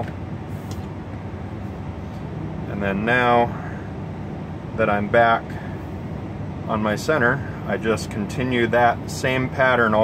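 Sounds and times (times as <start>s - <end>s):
truck cab hum: 0.0s - 10.0s.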